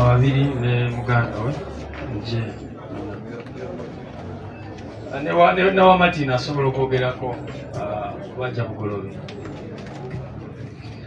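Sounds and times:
quiet background chatter: 0.0s - 11.0s.

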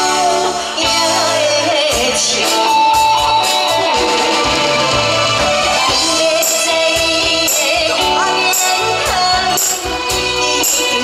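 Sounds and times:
live band guitar: 0.0s - 11.0s
steady drum beat: 0.0s - 11.0s.

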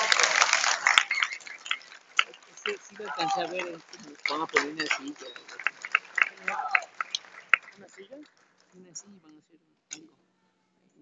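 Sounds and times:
person speaking: 2.6s - 5.6s.

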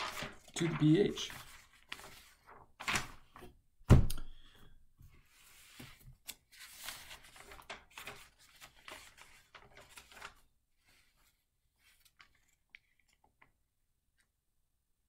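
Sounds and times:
paper rustling: 0.0s - 3.5s, 5.1s - 14.3s.

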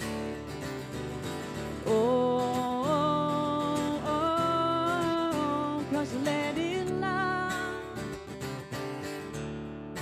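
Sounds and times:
acoustic guitar strumming chords: 0.0s - 10.0s.

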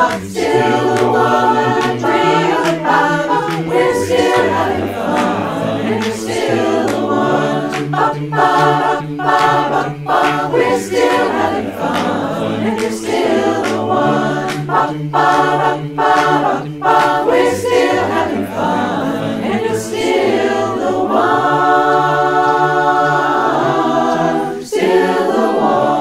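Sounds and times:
barbershop chorus singing a cappella: 0.0s - 26.0s.

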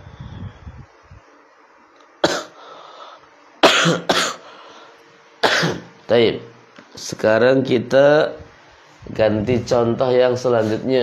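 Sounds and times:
man coughing: 2.2s - 2.6s, 3.6s - 4.5s, 5.4s - 5.9s.

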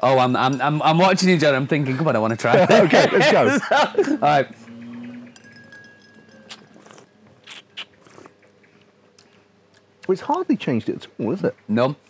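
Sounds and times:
sipping and slurping: 6.5s - 8.4s
lip smacks: 6.5s - 10.0s.

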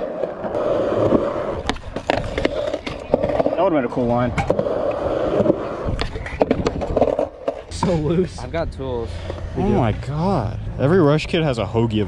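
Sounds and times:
skateboard clacks: 0.0s - 8.2s
skateboard wheels rolling on concrete: 0.0s - 12.0s.

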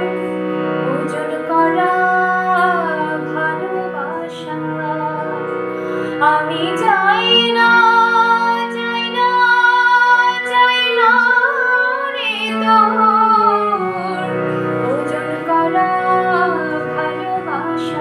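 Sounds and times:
long-held instrumental notes: 0.0s - 18.0s
woman singing: 0.8s - 18.0s.

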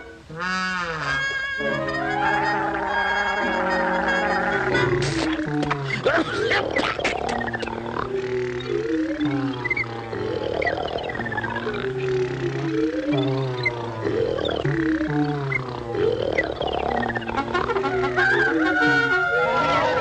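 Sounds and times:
cartoon music with sliding notes: 0.0s - 20.0s
rooster and hen sound effects: 0.3s - 20.0s.

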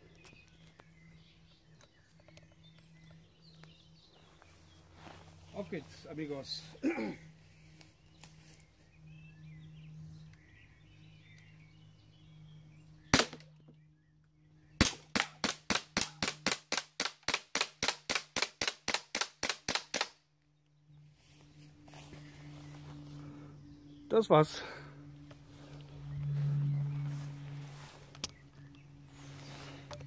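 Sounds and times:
air pistol shots: 13.1s - 13.5s, 14.8s - 20.2s.

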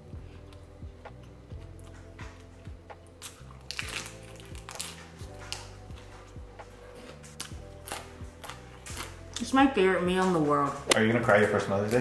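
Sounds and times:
quiet background music with bass: 0.0s - 12.0s
crunching leafy greens: 3.2s - 5.8s.

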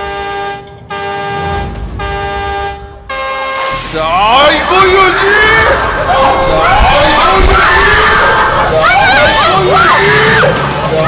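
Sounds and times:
horn blasts: 0.0s - 5.2s.

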